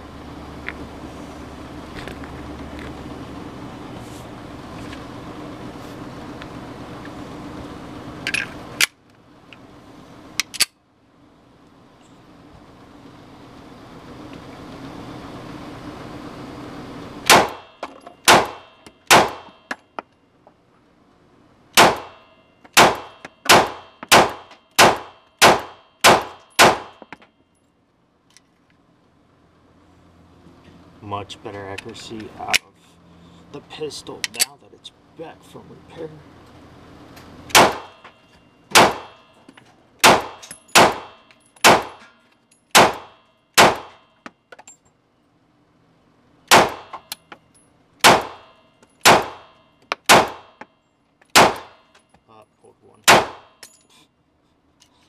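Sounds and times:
pistol shots: 17.3 - 19.6, 21.8 - 22.2, 22.8 - 27.0, 37.5 - 38.0, 38.7 - 39.2, 40.0 - 42.0, 42.7 - 44.0, 46.5 - 47.1, 48.0 - 50.6, 51.3 - 51.8, 53.0 - 53.6.

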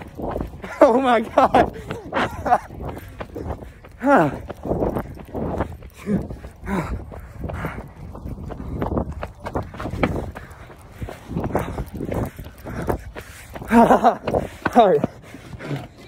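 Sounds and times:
people laughing breathlessly: 0.0 - 8.2, 9.9 - 16.0
heavy panting: 0.0 - 16.0.

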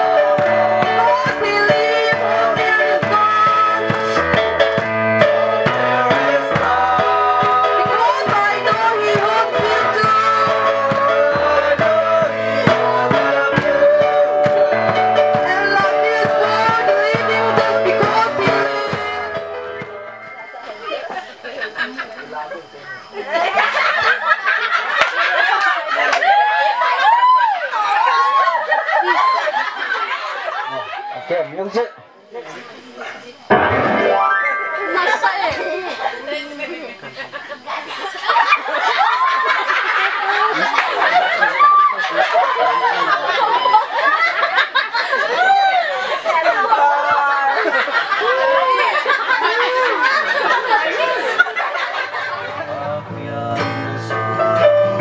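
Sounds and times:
group singing: 0.0 - 20.4, 50.4 - 55.0
acoustic guitar: 0.0 - 21.4, 32.6 - 36.4, 51.7 - 55.0
hand claps: 25.0 - 26.3
loud tone gliding upward: 33.5 - 36.0.

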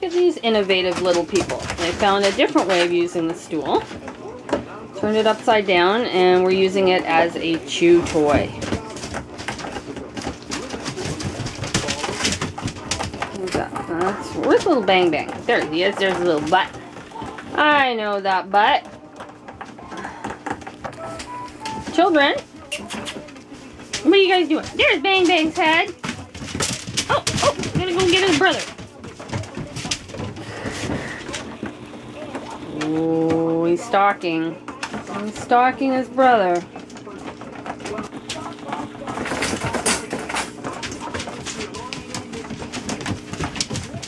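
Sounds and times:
paws scuffling on newspaper: 0.0 - 44.0
puppies gnawing on plastic: 0.0 - 44.0.

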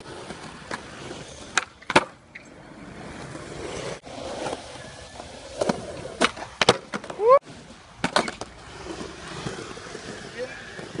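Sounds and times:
person shouting: 7.1 - 7.4.

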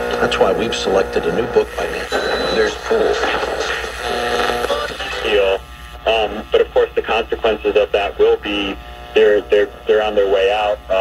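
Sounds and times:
distorted radio music: 0.0 - 11.0.

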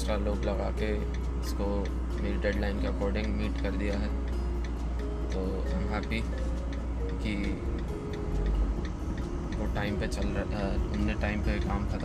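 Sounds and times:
low rumble of moving car: 0.0 - 12.0
turn signal ticking: 0.0 - 12.0.

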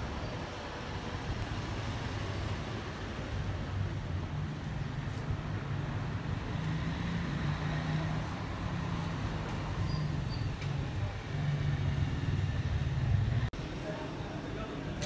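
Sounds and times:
street traffic: 0.0 - 15.0.

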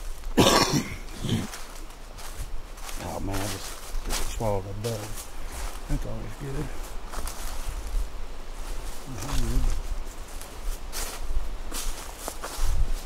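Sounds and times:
footsteps crunching through leaves: 0.0 - 13.0
man coughing: 0.4 - 1.6
man murmuring: 9.0 - 9.8.

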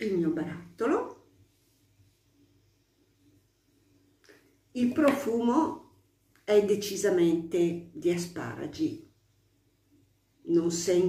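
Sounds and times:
person speaking: 0.0 - 1.3, 4.8 - 9.0.

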